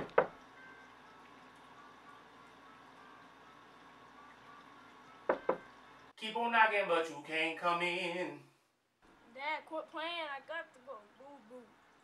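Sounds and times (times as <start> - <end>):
knocking on wooden door: 5.3 - 5.6.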